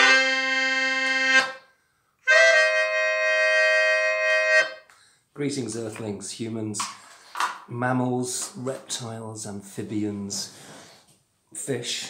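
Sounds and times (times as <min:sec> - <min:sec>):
melodica chord: 0:00.0 - 0:01.7, 0:02.3 - 0:04.8.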